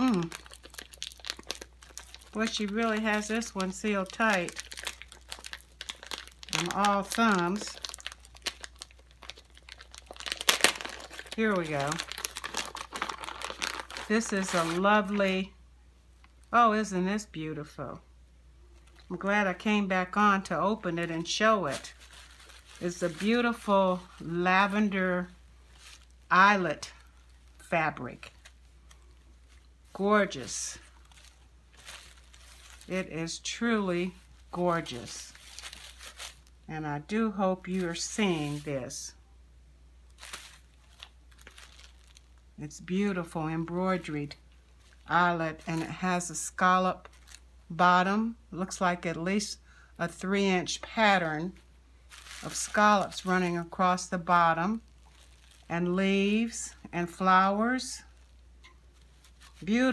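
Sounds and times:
fabric rustling on tissue paper: 0.0s - 15.2s, 21.1s - 24.8s, 25.6s - 26.3s, 28.2s - 36.6s, 37.6s - 39.0s, 40.1s - 42.3s, 51.4s - 56.6s, 58.1s - 59.9s
package wrapping crackling: 0.0s - 15.2s, 21.2s - 24.8s, 25.7s - 26.3s, 26.9s - 33.1s, 34.1s - 36.6s, 40.1s - 42.5s, 44.7s - 46.0s, 47.0s - 47.5s, 52.0s - 54.1s, 54.7s - 55.7s, 58.0s - 59.9s.

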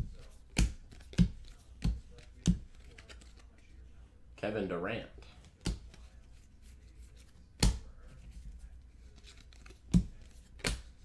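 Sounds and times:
cards slapping: 0.0s - 3.7s, 5.2s - 11.0s
paper cards rustling: 0.0s - 3.9s, 5.2s - 11.0s.

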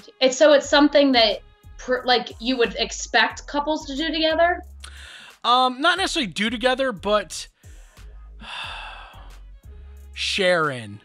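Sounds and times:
person breathing in: 4.9s - 5.4s, 7.6s - 9.4s.

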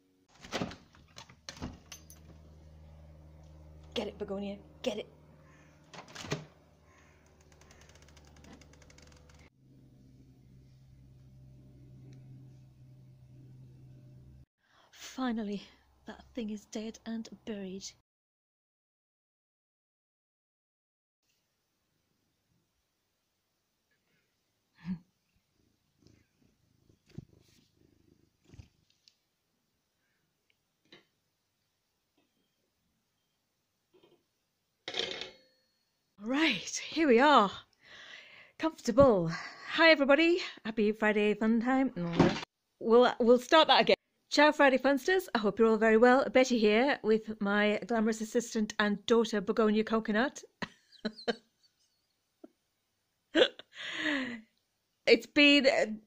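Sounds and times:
steady low hum: 1.9s - 7.6s, 8.3s - 14.5s
cat purring: 25.6s - 28.7s.

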